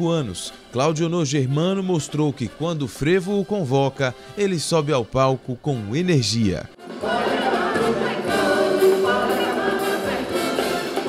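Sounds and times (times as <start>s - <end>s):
brass band: 0.0s - 11.0s
group singing in chorus: 6.8s - 11.0s.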